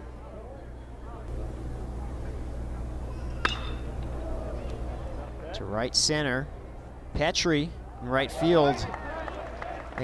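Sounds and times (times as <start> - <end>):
crowd murmur: 0.0 - 5.6
stadium hum: 0.0 - 10.0
metal bat ping: 3.2 - 4.0.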